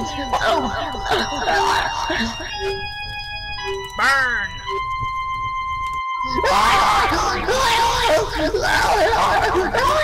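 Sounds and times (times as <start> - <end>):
person wailing: 0.3 - 2.7, 6.3 - 10.0
person screaming: 6.3 - 10.0.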